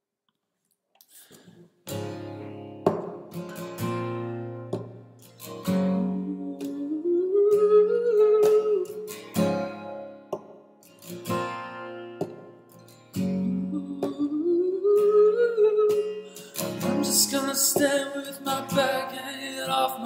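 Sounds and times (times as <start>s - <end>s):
acoustic guitar strumming: 1.8s - 20.0s.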